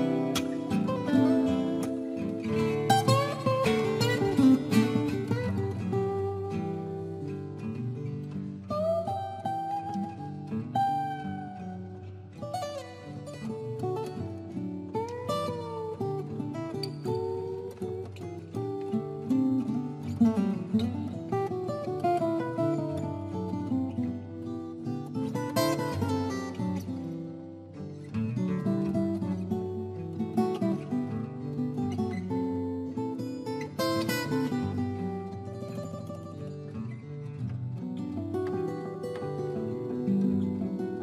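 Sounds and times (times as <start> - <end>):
strummed guitar chords: 0.0 - 14.2
acoustic guitars playing: 0.0 - 41.0.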